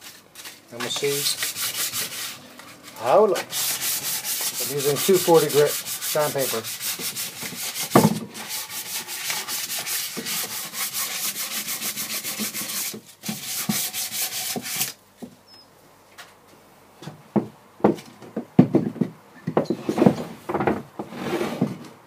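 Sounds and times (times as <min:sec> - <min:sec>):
sandpaper scraping wood: 0:00.0 - 0:15.0
knock: 0:07.9 - 0:08.3, 0:17.4 - 0:20.8.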